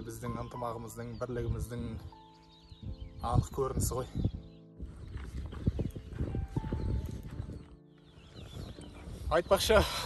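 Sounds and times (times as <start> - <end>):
footsteps on dirt path: 2.5 - 10.0.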